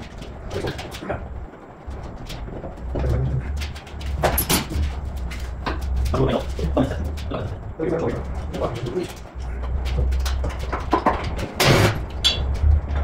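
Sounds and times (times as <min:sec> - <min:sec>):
low steady hum: 0:00.0 - 0:13.0
hand tools knocking and clanking: 0:02.4 - 0:13.0.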